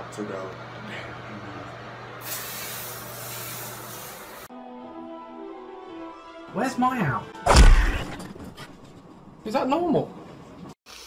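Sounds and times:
aerosol can spraying hiss: 0:02.2 - 0:04.5.

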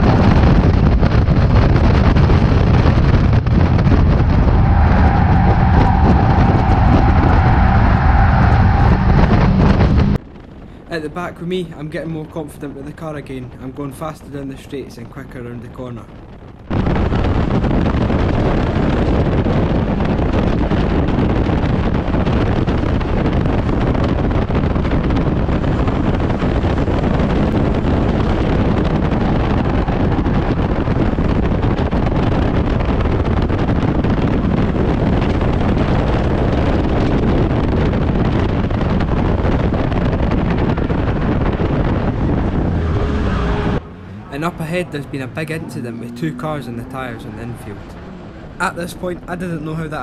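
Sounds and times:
race car engine and road noise: 0:00.0 - 0:50.0
wind buffeting on microphone: 0:00.0 - 0:50.0.

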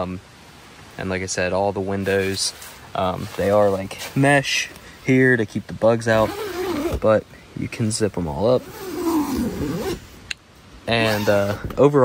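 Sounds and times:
zipper pulled shut: 0:06.2 - 0:07.1, 0:08.6 - 0:10.0, 0:11.0 - 0:11.8.

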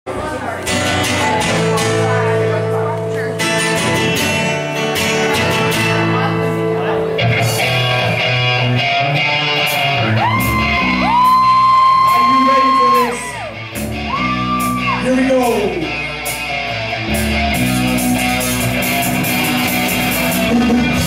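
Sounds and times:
live rock band playing: 0:00.1 - 0:21.0.

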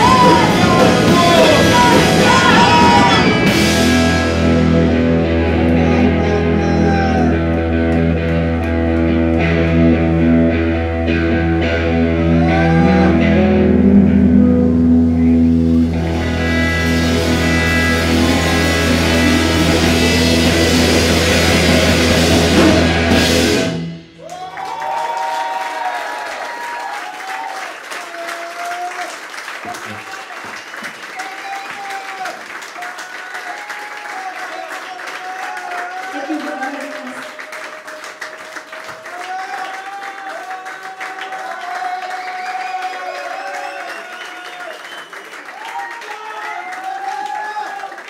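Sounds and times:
punk rock band playing: 0:00.0 - 0:24.2
crowd cheering and applauding: 0:00.0 - 0:48.0.

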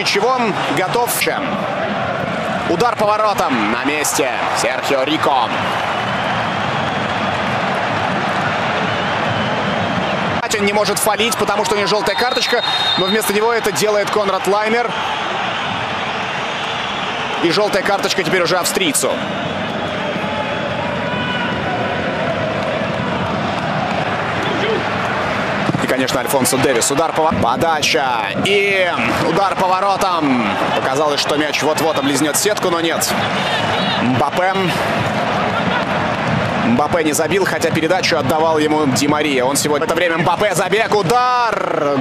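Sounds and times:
crowd roar at football match: 0:00.0 - 0:42.0.

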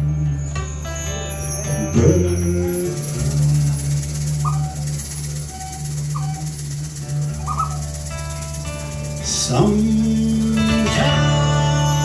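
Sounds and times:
acoustic guitar chord ringing: 0:00.0 - 0:12.0
percussion rattle: 0:00.0 - 0:12.0.

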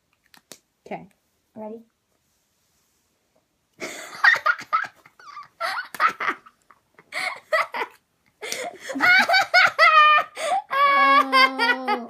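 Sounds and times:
children laughing and squealing: 0:08.9 - 0:12.0.

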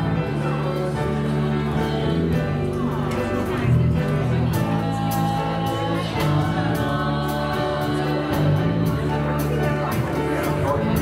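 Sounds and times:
band playing worship song: 0:00.0 - 0:11.0.

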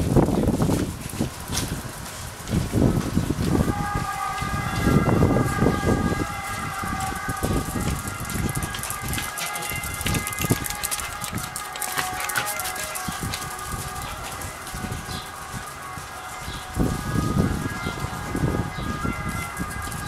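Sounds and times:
sandal footsteps on tiles: 0:06.9 - 0:15.7
dog claws tapping on tiles: 0:08.3 - 0:13.4.

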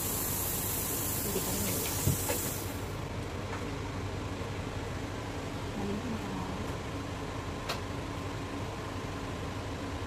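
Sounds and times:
rushing air hiss: 0:00.0 - 0:02.9.

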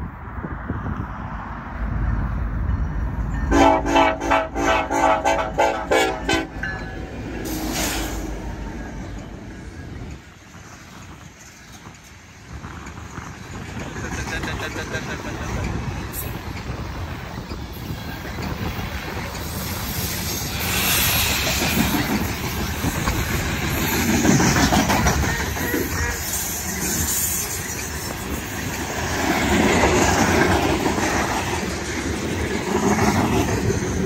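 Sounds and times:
train cars rumbling on rails: 0:00.0 - 0:34.0
locomotive air horn blasts: 0:03.5 - 0:06.6, 0:25.3 - 0:26.5.

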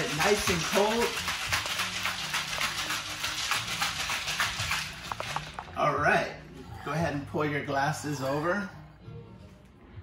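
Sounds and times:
ice rattling in cocktail shaker: 0:00.0 - 0:05.8.

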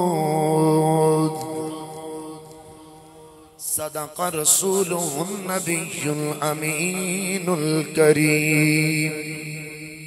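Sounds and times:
man chanting through loudspeakers: 0:00.0 - 0:10.0.

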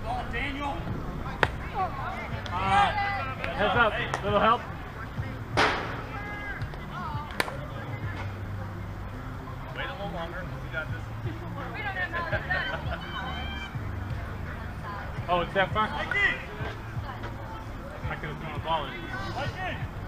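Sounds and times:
bat striking ball crack: 0:01.4 - 0:01.6, 0:05.6 - 0:06.2
people shouting: 0:01.4 - 0:03.6, 0:05.7 - 0:06.8, 0:11.8 - 0:14.0
sharp knock: 0:05.6 - 0:06.1.

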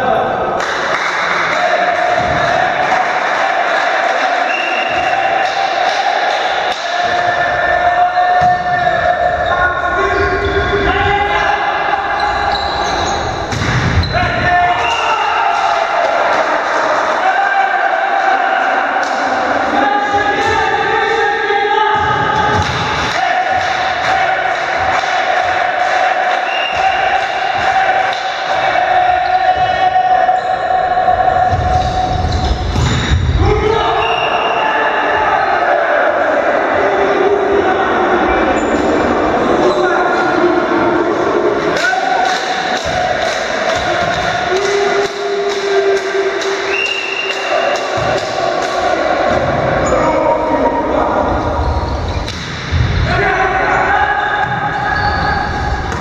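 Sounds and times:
players' voices: 0:00.0 - 0:56.0
volleyball striking and bouncing: 0:08.4 - 0:09.0, 0:13.4 - 0:14.2, 0:22.0 - 0:29.8, 0:31.4 - 0:33.4, 0:41.8 - 0:49.8, 0:54.4 - 0:56.0.

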